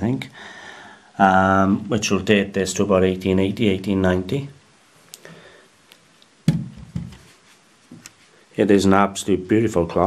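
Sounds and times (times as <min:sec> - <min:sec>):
handling knock: 0:06.5 - 0:07.3.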